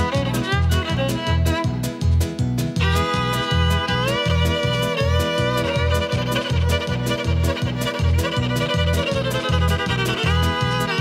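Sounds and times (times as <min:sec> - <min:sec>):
acoustic guitar accompaniment: 0:00.0 - 0:11.0
bouncing bass: 0:00.0 - 0:11.0
fiddle melody with slides: 0:00.0 - 0:11.0.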